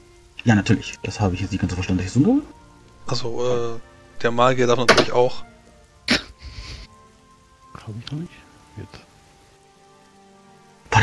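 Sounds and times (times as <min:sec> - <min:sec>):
quiet background music: 0:00.0 - 0:11.0
soft even hiss: 0:00.0 - 0:11.0.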